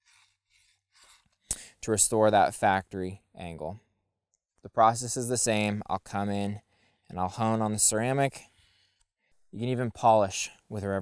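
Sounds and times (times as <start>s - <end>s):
blade rasping on sharpener: 0.0s - 1.6s.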